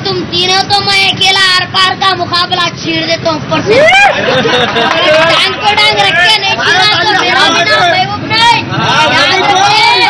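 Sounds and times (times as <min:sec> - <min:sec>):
boy speaking rapidly: 0:00.0 - 0:04.1, 0:04.9 - 0:10.0.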